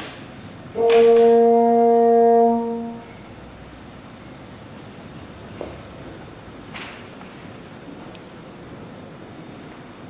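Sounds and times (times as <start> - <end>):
long brass note: 0.7 - 3.2.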